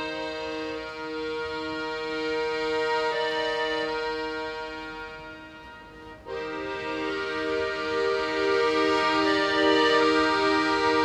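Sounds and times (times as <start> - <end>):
accordion chords: 0.0 - 11.0.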